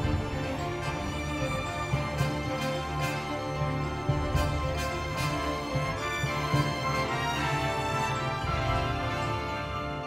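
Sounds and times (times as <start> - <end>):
orchestra playing sustained chords: 0.0 - 10.0.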